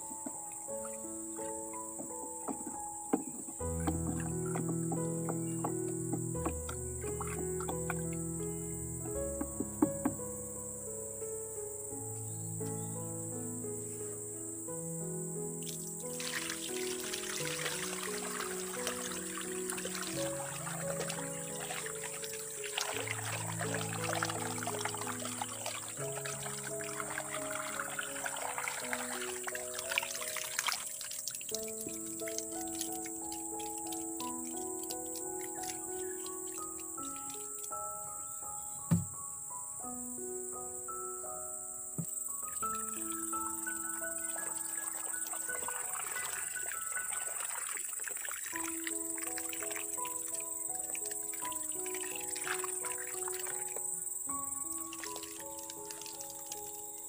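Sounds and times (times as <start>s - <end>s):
background music: 0.0s - 57.0s
high insect drone: 0.0s - 57.0s
liquid pouring into plastic can: 16.0s - 37.6s, 44.0s - 50.2s.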